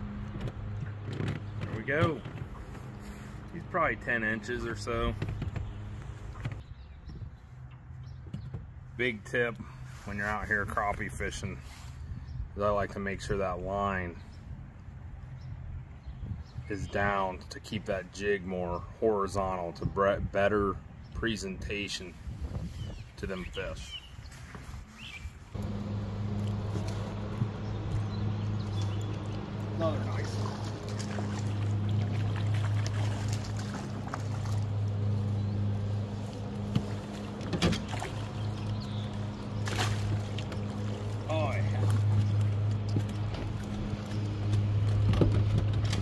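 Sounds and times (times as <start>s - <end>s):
electric boat motor humming: 25.6s - 46.0s
fish flopping on deck: 30.2s - 35.1s, 36.6s - 43.7s.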